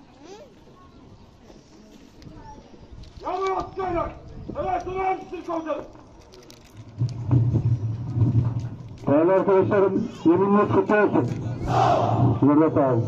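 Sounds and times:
man calling over public address: 3.2 - 5.9, 9.0 - 11.4, 12.2 - 13.0.

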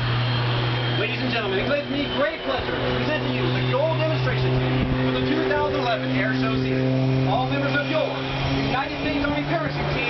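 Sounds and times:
engine droning: 0.0 - 10.0.

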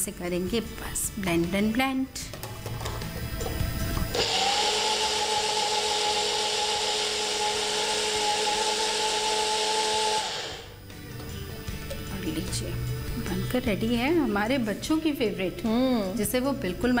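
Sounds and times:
blender motor running: 3.7 - 10.8.

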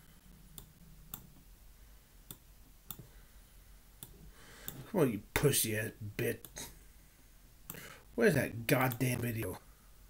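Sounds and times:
computer mouse clicks: 2.3 - 3.1
man speaking: 4.8 - 6.8, 8.2 - 9.6.

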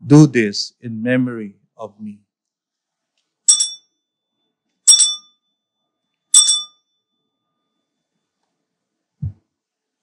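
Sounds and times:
altar bell ringing: 3.5 - 3.9, 4.9 - 5.5, 6.3 - 8.0.

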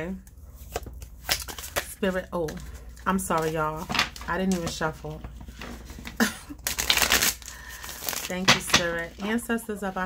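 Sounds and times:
cards being shuffled: 0.6 - 4.7, 5.8 - 8.8.

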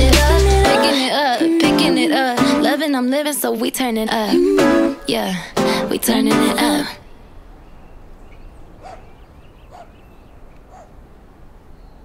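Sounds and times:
faint outdoor background: 0.0 - 12.0
short animal calls: 8.8 - 10.0.

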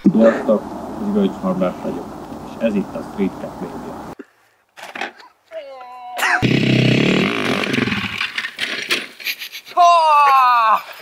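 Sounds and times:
motorcycle engine revving: 6.4 - 8.4.

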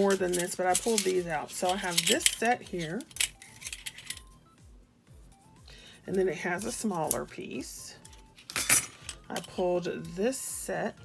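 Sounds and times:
metal tools clinking: 0.0 - 4.3, 8.0 - 9.6.

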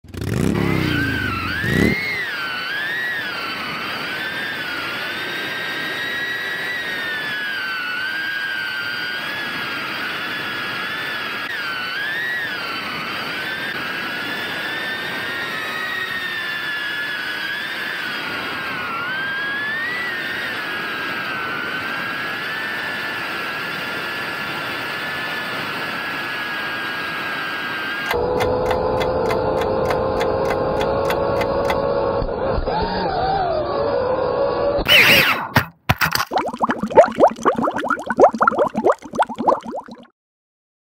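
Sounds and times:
drone motors whining: 0.4 - 22.8, 27.6 - 35.7.

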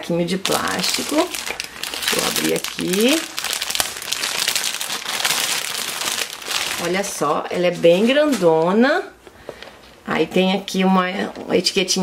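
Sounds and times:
plastic bag crinkling: 0.3 - 8.8.

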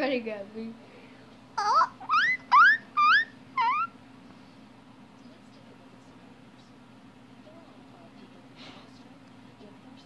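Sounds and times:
guinea pig squealing: 1.6 - 4.0.

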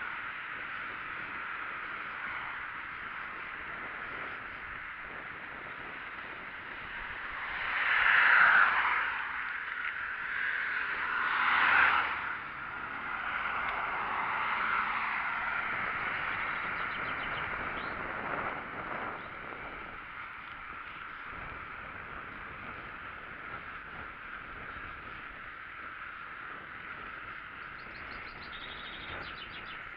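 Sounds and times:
bicycle rolling and wind noise: 0.0 - 29.9
road vehicles passing: 0.0 - 29.9.

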